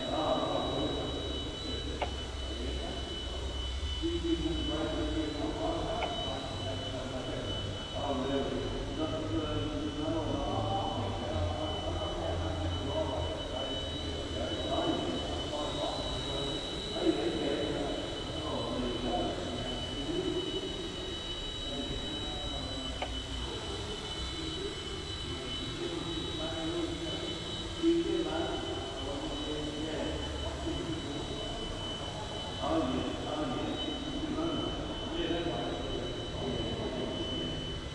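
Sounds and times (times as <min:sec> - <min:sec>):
toy helicopter rotor whine: 0:00.0 - 0:37.9.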